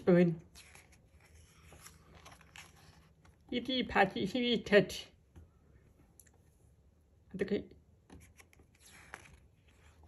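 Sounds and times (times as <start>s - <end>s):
book page being turned: 0.4s - 3.5s, 8.1s - 10.0s.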